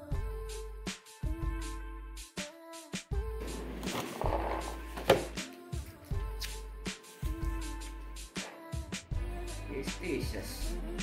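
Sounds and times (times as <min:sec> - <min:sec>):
paper and cardboard tearing: 0:03.4 - 0:05.3
hip-hop beat: 0:03.5 - 0:11.0.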